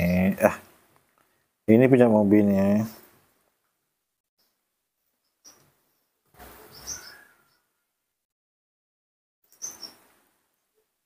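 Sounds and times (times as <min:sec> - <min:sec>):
baby monkey squeaking: 0:09.6 - 0:10.0.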